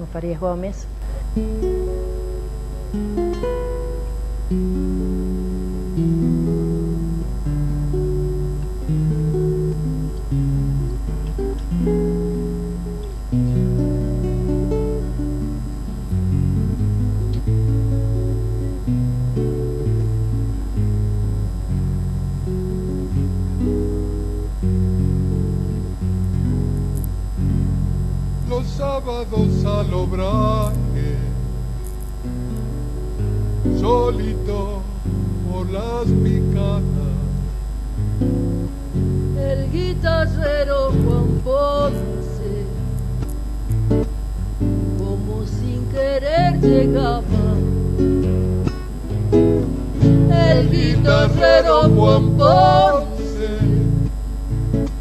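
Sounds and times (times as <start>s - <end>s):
fingerpicked acoustic guitar: 0.0s - 55.0s.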